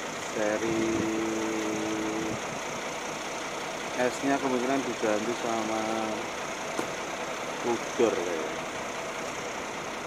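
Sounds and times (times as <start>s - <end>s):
bus engine idling: 0.0s - 10.0s.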